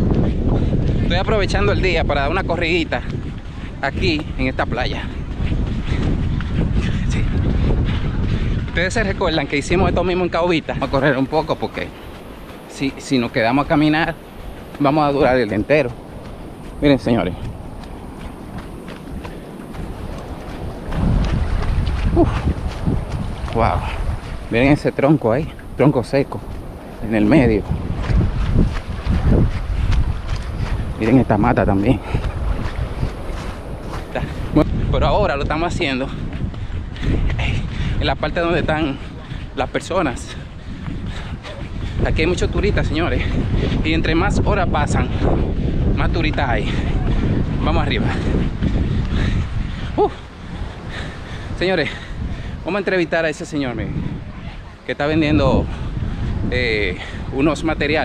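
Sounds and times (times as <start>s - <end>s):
footfalls on sand: 0.0s - 58.0s
wind buffeting microphone: 0.0s - 58.0s.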